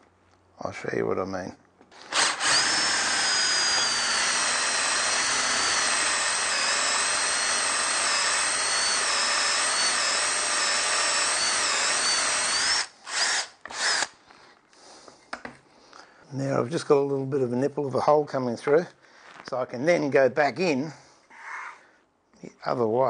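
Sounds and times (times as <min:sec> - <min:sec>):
cordless drill boring into wood: 0:02.0 - 0:14.1.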